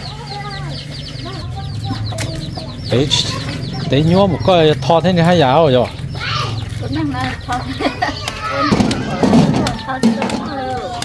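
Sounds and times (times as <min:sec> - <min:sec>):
chickens clucking: 0:00.0 - 0:11.0
chicks cheeping: 0:00.0 - 0:11.0
steady low hum: 0:00.4 - 0:09.2.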